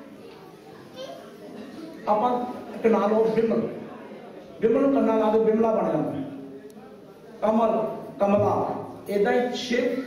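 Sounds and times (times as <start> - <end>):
faint children's voices chattering: 0.0 - 10.0
man's amplified speech: 2.0 - 3.8, 4.6 - 6.4, 7.4 - 10.0.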